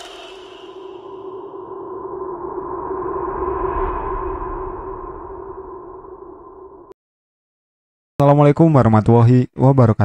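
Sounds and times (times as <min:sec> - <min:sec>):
low rumble: 0:00.0 - 0:07.0.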